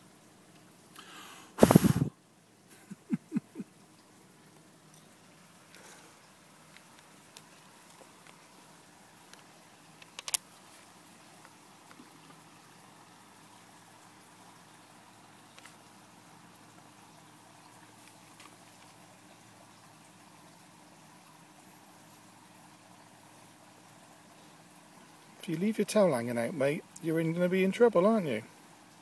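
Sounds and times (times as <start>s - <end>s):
faint background hum: 0.0s - 29.0s
sharp clicks: 10.0s - 10.4s.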